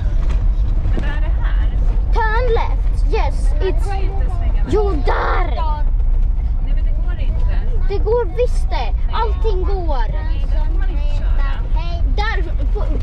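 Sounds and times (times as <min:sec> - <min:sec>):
camper van driving rumble: 0:00.0 - 0:13.0
voices talking: 0:01.0 - 0:06.0, 0:06.6 - 0:13.0.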